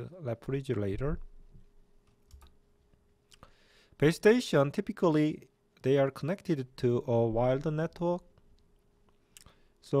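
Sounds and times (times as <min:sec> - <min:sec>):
faint steady hum: 0:00.0 - 0:10.0
computer mouse clicks: 0:02.2 - 0:02.6.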